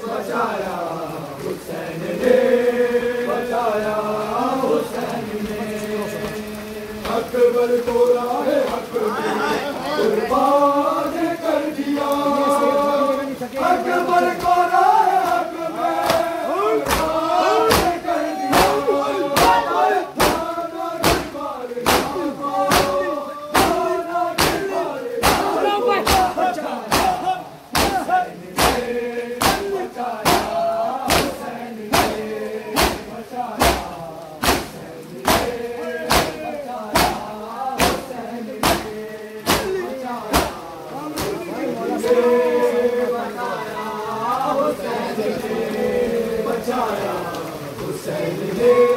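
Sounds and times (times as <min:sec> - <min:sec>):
men chanting: 0:00.0 - 0:48.9
hands slapping chests in unison: 0:13.6 - 0:42.2.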